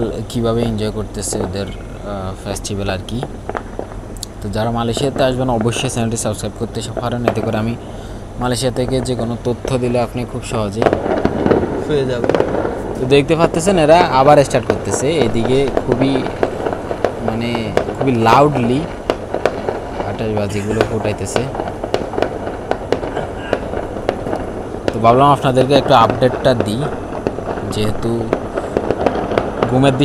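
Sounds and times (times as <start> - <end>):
man's voice: 0.0 - 3.3, 13.0 - 16.3, 17.2 - 18.9, 20.0 - 21.5, 25.0 - 26.9, 27.7 - 28.4, 29.6 - 30.0
fireworks popping and crackling: 0.0 - 30.0.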